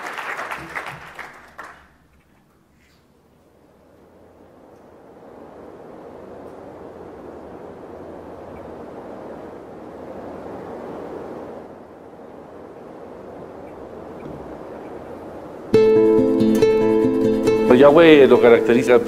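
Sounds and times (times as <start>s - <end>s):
wind-like rushing noise: 3.8s - 15.8s.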